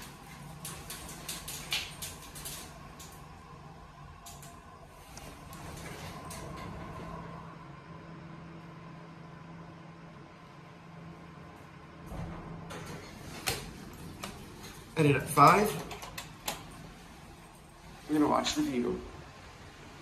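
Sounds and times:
elevator cab rattling and clicking: 0:00.0 - 0:03.2, 0:05.2 - 0:07.2, 0:12.1 - 0:17.2
elevator high whine: 0:00.0 - 0:20.0
elevator low hum: 0:00.0 - 0:20.0.

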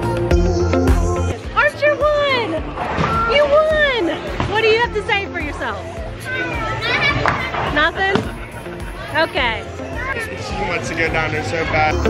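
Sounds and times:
people's voices: 0:01.2 - 0:12.0
young children chattering: 0:01.6 - 0:12.0.

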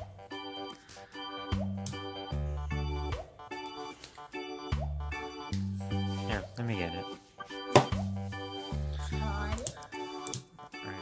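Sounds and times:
keyboard tune with bass: 0:00.0 - 0:11.0.

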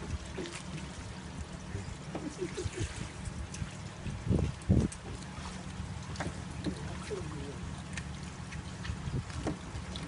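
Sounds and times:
steady low rumble: 0:00.0 - 0:10.0.

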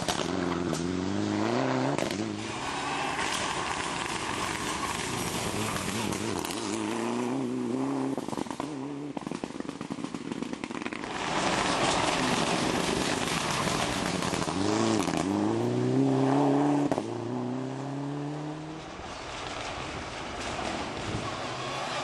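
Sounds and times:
engine crackling and popping: 0:00.0 - 0:01.1, 0:01.9 - 0:15.5, 0:18.8 - 0:22.0
rally car engine accelerating: 0:00.0 - 0:09.4, 0:11.4 - 0:18.9.

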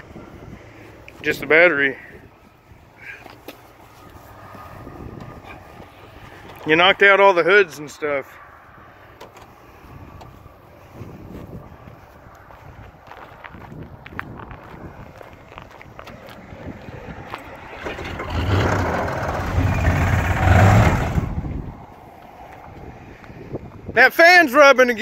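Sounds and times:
pickup engine running: 0:09.0 - 0:22.0
engine fan rubbing: 0:16.0 - 0:21.7.

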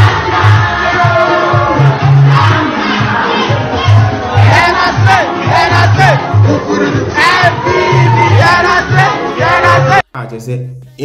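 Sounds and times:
crowd shouting and cheering: 0:00.0 - 0:10.0
music with pulsing low beat: 0:00.0 - 0:10.0.

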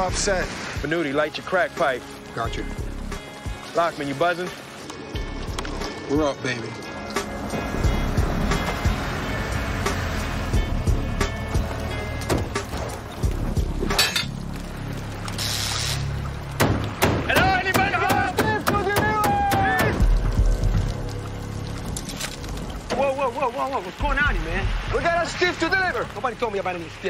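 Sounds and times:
heavy rain: 0:00.0 - 0:27.0.

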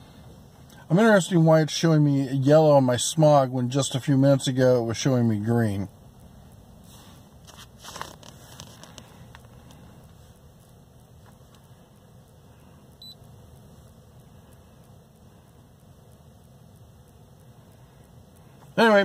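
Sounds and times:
low steady hum: 0:00.0 - 0:19.0.

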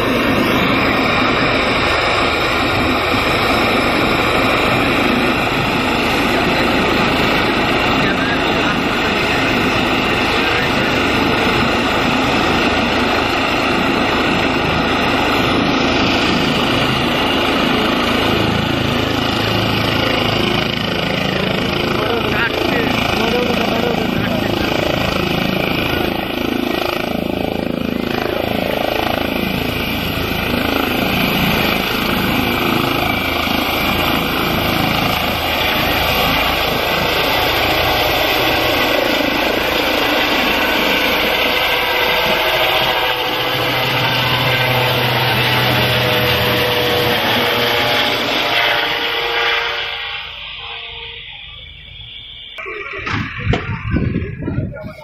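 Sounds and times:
helicopter turbine and rotor noise: 0:00.0 - 0:55.0.

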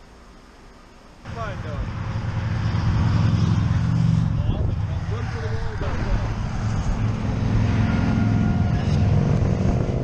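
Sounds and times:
motorcycle engine passing: 0:01.3 - 0:10.0.

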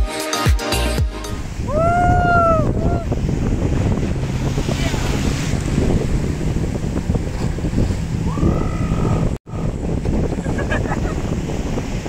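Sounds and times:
surf washing on shore: 0:01.2 - 0:12.0
wind buffeting microphone: 0:01.3 - 0:12.0.

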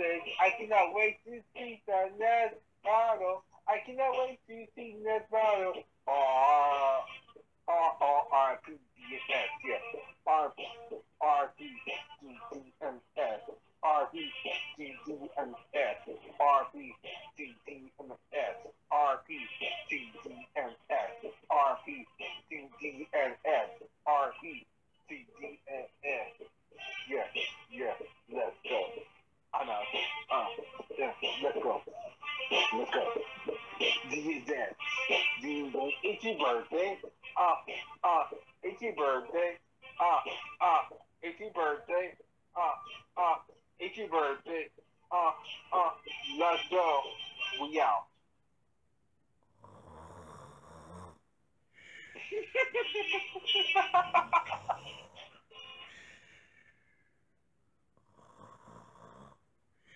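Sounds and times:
speech over telephone line: 0:00.0 - 0:48.1, 0:52.5 - 0:54.3
person snoring: 0:49.5 - 0:51.2, 0:54.2 - 0:56.6, 0:58.0 - 0:59.9.

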